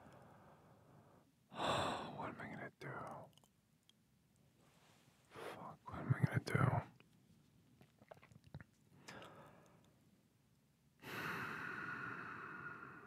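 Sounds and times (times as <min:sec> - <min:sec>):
man whispering: 0:02.0 - 0:03.4, 0:05.4 - 0:07.0
long breathy exhale: 0:11.0 - 0:13.0.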